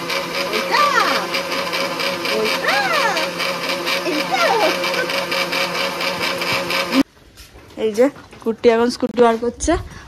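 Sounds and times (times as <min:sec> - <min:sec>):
small electric motor running: 0:00.0 - 0:07.0.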